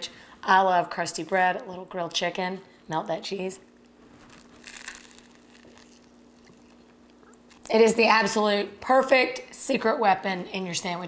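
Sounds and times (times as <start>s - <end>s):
crusty bread crunching: 3.8s - 7.7s.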